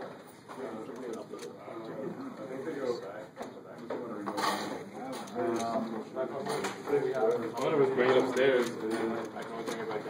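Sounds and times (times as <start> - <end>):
people talking indistinctly: 0.4 - 10.0.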